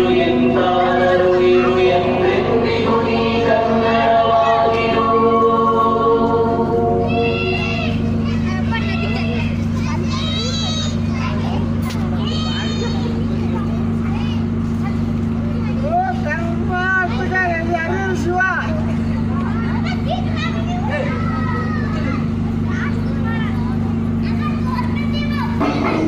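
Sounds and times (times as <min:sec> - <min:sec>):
children chattering: 0:00.0 - 0:26.0
truck engine running: 0:00.0 - 0:26.0.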